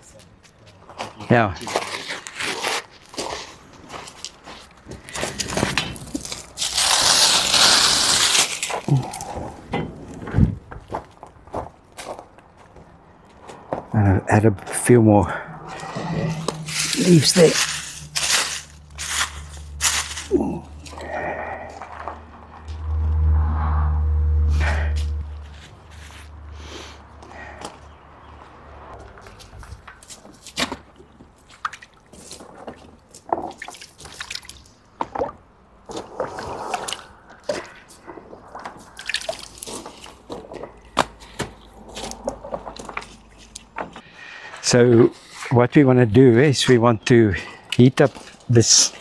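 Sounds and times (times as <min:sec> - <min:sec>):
low rumble: 0:14.6 - 0:26.4
water splashing and dripping: 0:31.3 - 0:40.4.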